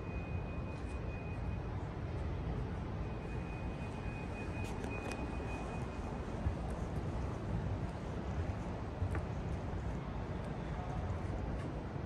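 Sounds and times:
low terminal hall rumble: 0:00.0 - 0:12.0.

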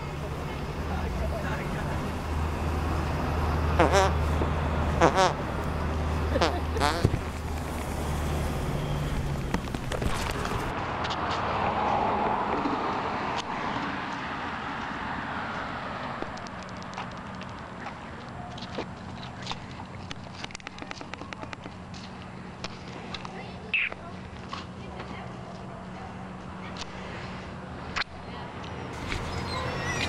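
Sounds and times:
car passing: 0:00.0 - 0:20.0, 0:26.0 - 0:30.0
footsteps with clicks and crackles: 0:05.6 - 0:27.0.

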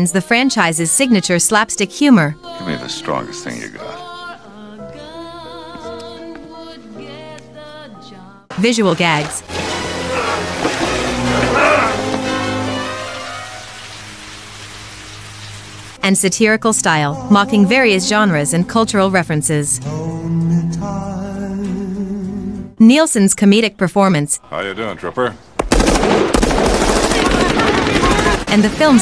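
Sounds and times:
shower head spraying water: 0:09.1 - 0:15.8
rapid automatic gunfire: 0:25.7 - 0:29.0.

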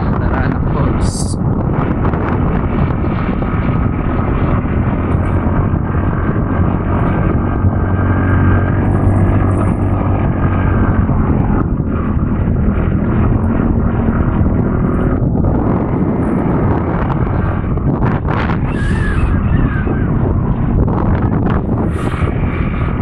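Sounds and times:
motorcycle engine running: 0:00.0 - 0:23.0
wind noise on microphone: 0:00.0 - 0:23.0.

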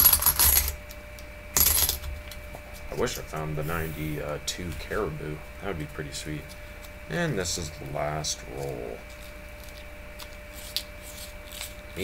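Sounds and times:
coins clinking: 0:01.6 - 0:02.0.

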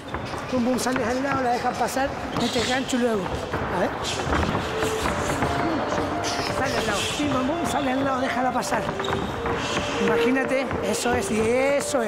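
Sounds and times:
background music with held notes: 0:04.6 - 0:12.0
person speaking: 0:04.7 - 0:12.0.

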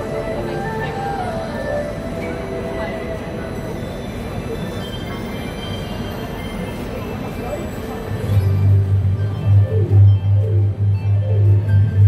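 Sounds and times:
rumbling street traffic noise: 0:00.0 - 0:12.0
backing track music: 0:08.4 - 0:12.0.

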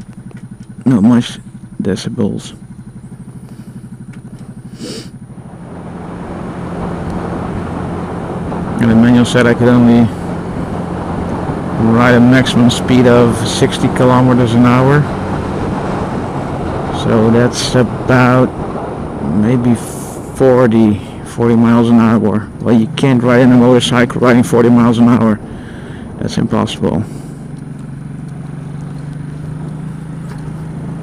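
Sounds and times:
faint low motorcycle engine drone: 0:00.0 - 0:31.0
wind and road noise: 0:00.0 - 0:31.0.

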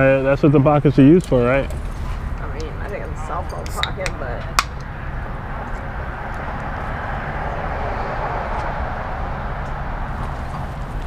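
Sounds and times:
road traffic rumble and hiss: 0:00.0 - 0:11.0.

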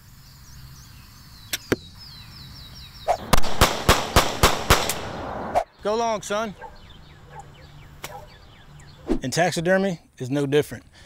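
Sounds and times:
faint bird chirps: 0:00.0 - 0:03.3, 0:05.7 - 0:09.3
sharp cracks: 0:03.1 - 0:05.7
loud rushing noise: 0:04.3 - 0:05.8.

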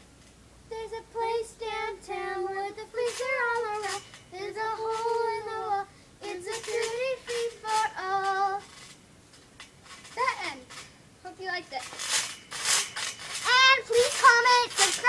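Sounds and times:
child singing: 0:00.7 - 0:08.7, 0:13.4 - 0:15.0.

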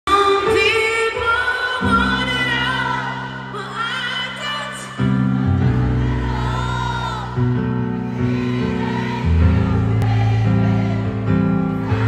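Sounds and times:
woman singing: 0:00.1 - 0:05.1.

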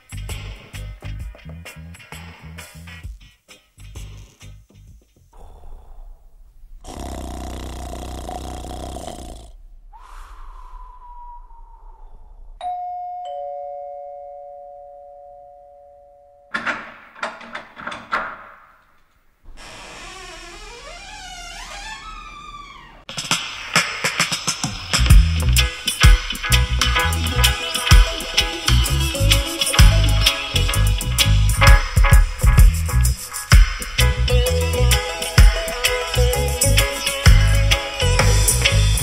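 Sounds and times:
burst of noise: 0:05.6 - 0:12.6
falling tone: 0:09.5 - 0:12.7
two-note doorbell chime: 0:12.6 - 0:16.5
wavering tones climbing: 0:25.4 - 0:32.0.

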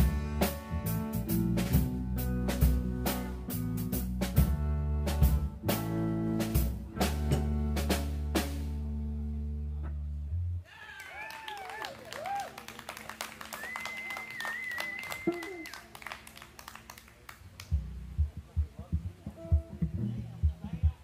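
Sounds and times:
rock band chord: 0:00.0 - 0:09.8
audience clapping and whooping: 0:10.7 - 0:17.8
audience member whistling: 0:13.4 - 0:15.9.

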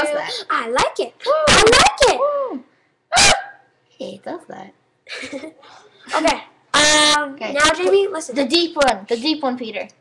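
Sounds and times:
girl singing: 0:00.0 - 0:00.5
short loud vocal cry: 0:01.4 - 0:03.6.

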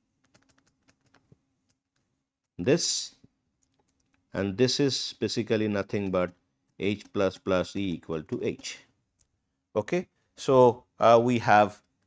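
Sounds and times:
stylus tapping on tablet screen: 0:05.9 - 0:08.8.

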